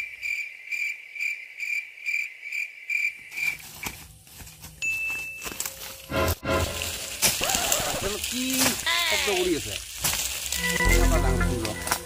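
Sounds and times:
insect chirping: 0.0s - 4.4s
rustling of leafy undergrowth: 3.2s - 12.0s.

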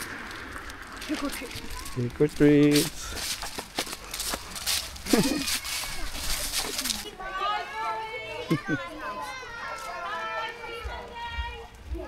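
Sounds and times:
children talking and calling out: 1.0s - 2.2s, 2.8s - 12.0s.

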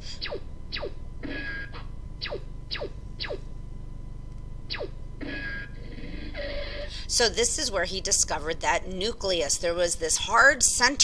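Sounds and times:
short zaps falling in pitch: 0.0s - 3.5s, 4.7s - 6.5s
steady low hum: 0.0s - 11.0s.

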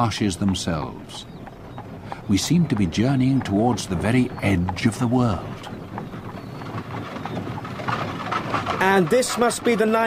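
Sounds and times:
cart wheels rolling: 0.0s - 10.0s
hooves clip-clopping: 0.0s - 10.0s.

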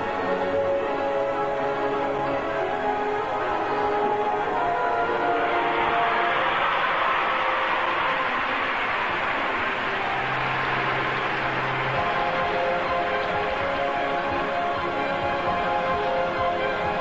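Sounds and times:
crowd applause and cheering: 0.0s - 17.0s
figure skating program music: 0.0s - 17.0s.

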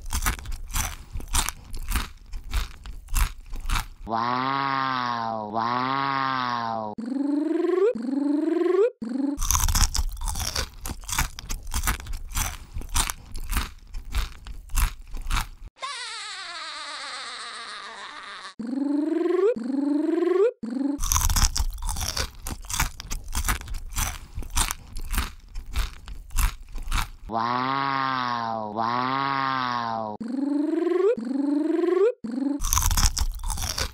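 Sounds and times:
crunchy chewing and biting: 0.0s - 4.8s, 9.4s - 15.7s, 21.0s - 28.2s, 32.6s - 33.9s
cartoon-voice yelps: 15.8s - 18.6s, 27.3s - 30.2s.

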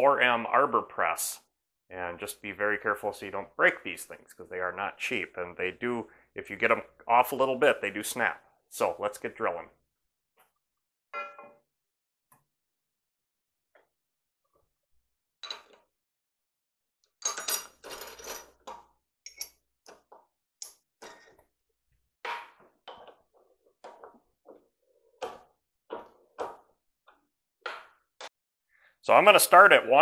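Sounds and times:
metal tooling clanks and clicks: 15.4s - 15.8s, 17.2s - 21.4s.

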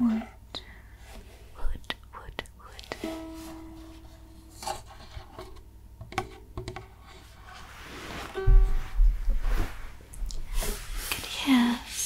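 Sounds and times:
ukulele string plucked: 8.3s - 9.5s.

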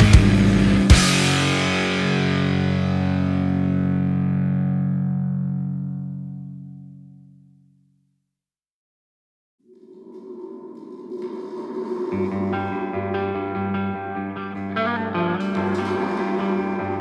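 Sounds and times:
heavy rock music: 0.0s - 5.6s, 12.4s - 17.0s.

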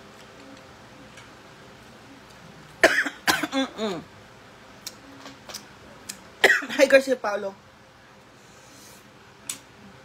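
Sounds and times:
person coughing: 2.8s - 4.1s, 6.4s - 6.8s.

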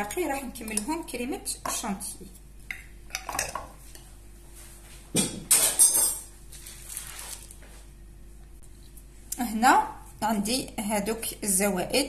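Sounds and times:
dishes and utensils clattering: 3.1s - 3.8s, 5.2s - 6.3s.

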